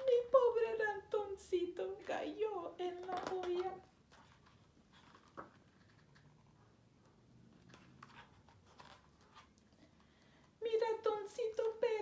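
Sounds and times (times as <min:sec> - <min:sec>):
paper rustling and tapping: 0:03.0 - 0:06.3.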